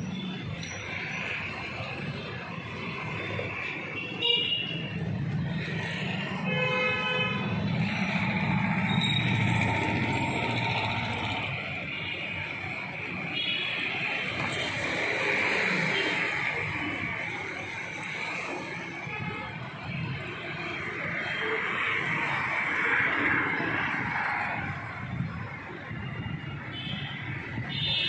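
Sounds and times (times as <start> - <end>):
street traffic noise: 0.0 - 28.0.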